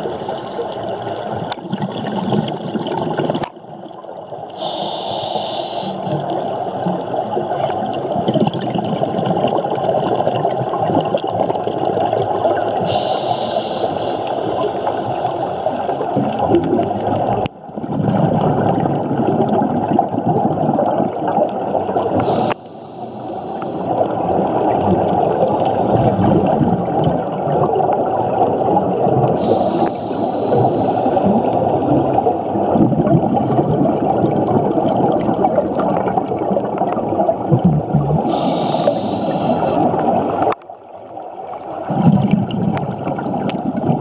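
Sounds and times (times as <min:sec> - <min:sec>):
divers' exhaust bubbles: 0:00.0 - 0:03.9, 0:04.5 - 0:40.6, 0:41.8 - 0:44.0
underwater rushing and gurgling: 0:00.0 - 0:44.0.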